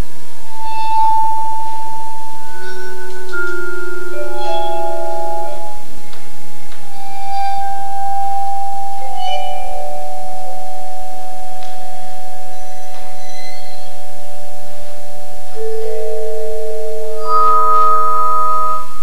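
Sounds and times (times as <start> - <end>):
vibraphone notes ringing: 0.5 - 6.2, 6.9 - 18.9.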